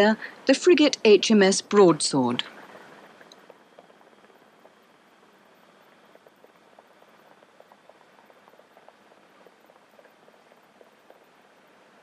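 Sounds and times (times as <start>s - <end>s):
faint steady hiss: 0.0s - 12.0s
soft ticks and crackles: 2.4s - 12.0s.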